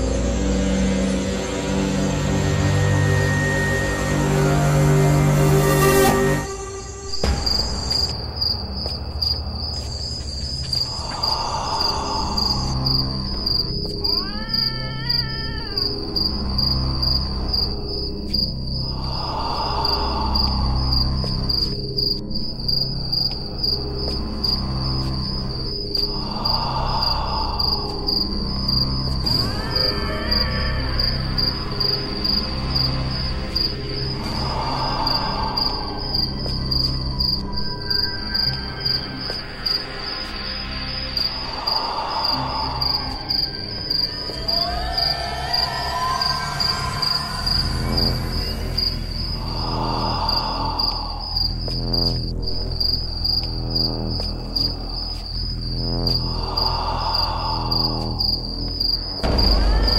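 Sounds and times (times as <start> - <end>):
crickets chirping: 0.0 - 59.9
wavering wailing glide: 42.4 - 50.8
dark music with pulsing beat: 47.1 - 59.9.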